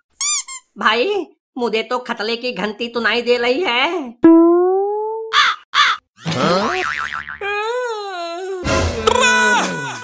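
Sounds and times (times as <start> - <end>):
cartoon spring boing: 4.2 - 5.3.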